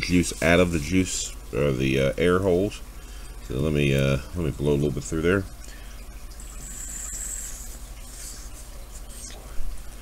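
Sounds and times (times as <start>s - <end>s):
breath blown through tube hissing: 6.5s - 8.5s.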